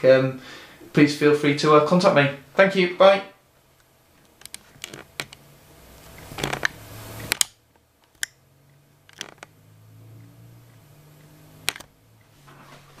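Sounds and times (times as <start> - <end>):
sharp clicks and taps: 11.7 - 11.9.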